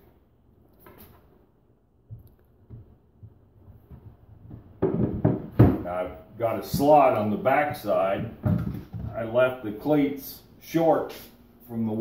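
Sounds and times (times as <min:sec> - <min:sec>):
wooden shelf knocking on wood: 0:02.1 - 0:06.0.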